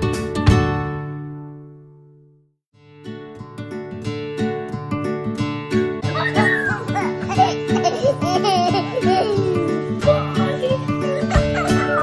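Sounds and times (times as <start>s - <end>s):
background music: 4.5s - 12.0s
girl laughing and giggling: 6.1s - 12.0s.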